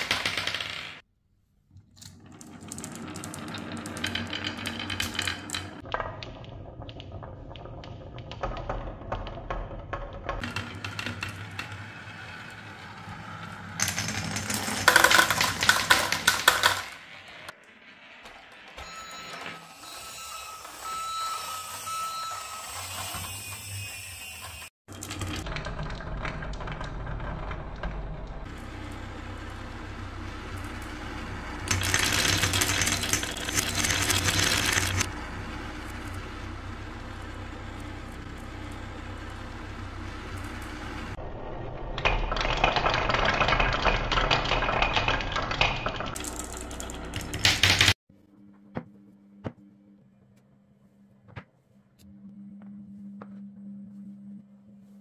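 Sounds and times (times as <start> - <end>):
marbles rattling on wooden track: 0.0 - 1.0, 2.2 - 17.5, 31.6 - 35.1, 42.0 - 48.0.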